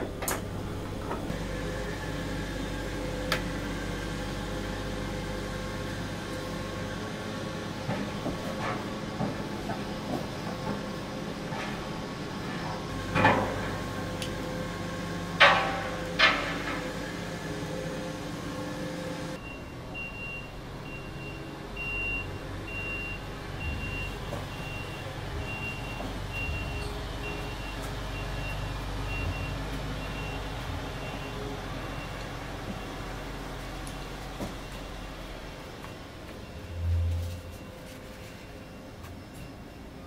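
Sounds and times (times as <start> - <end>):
low street rumble: 0.0 - 40.0
truck reversing alarm beeping: 14.0 - 40.0.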